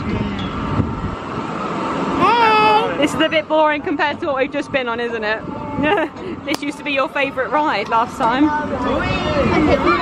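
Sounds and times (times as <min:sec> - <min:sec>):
fairground ride mechanical rumble: 0:00.0 - 0:10.0.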